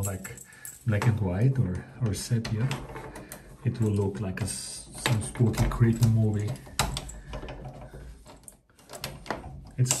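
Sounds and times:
key turning in door lock: 0.0 - 10.0.

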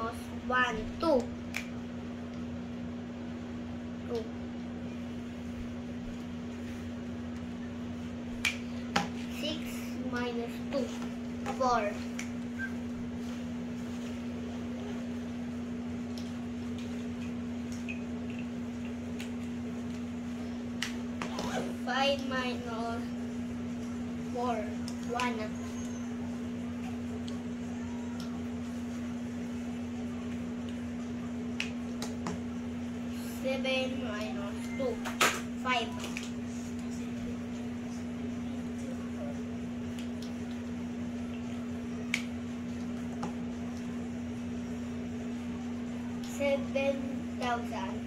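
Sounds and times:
low background hum: 0.0 - 48.0.

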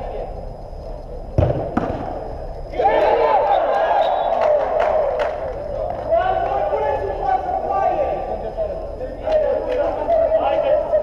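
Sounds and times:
football thud: 1.3 - 2.3
players shouting in hall: 2.7 - 8.1.

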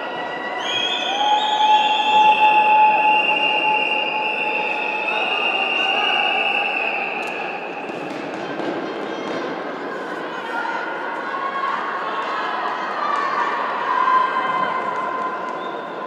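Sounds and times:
crowded sports hall noise: 0.0 - 16.0.

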